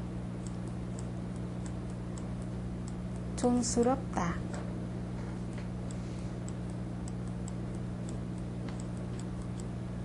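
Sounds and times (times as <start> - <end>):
low electrical hum: 0.0 - 10.0
faint ticking: 0.3 - 4.0, 5.5 - 10.0.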